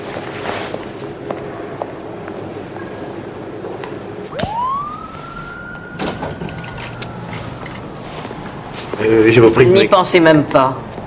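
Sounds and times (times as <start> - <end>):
squealing door hinge: 5.7 - 8.0.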